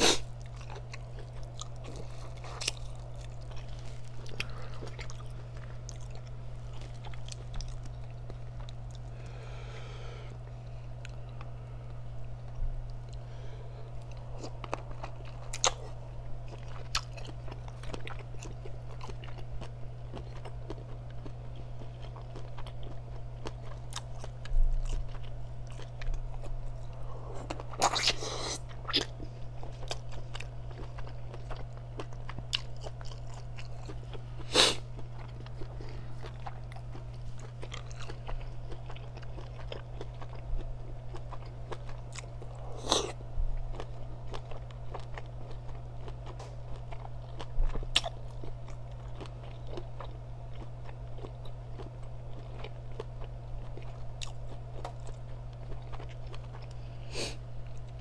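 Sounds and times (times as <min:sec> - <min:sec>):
steady low hum: 0:00.0 - 0:58.0
chewing and biting: 0:00.1 - 0:09.3, 0:13.9 - 0:57.0, 0:57.6 - 0:58.0.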